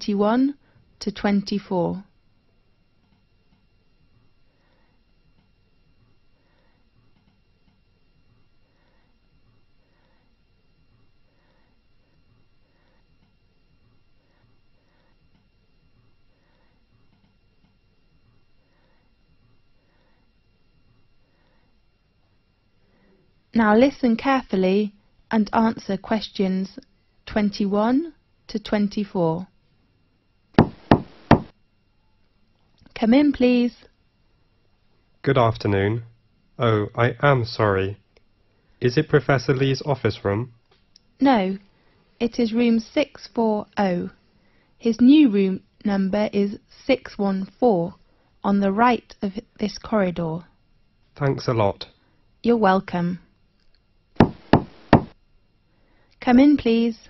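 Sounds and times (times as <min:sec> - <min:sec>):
knocks on a door: 0:30.6 - 0:31.5, 0:54.2 - 0:55.2.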